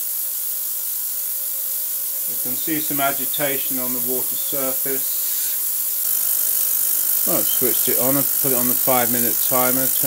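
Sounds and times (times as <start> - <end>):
faint steady hum: 0.0 - 10.0
ultrasonic cleaner hissing: 0.0 - 10.0.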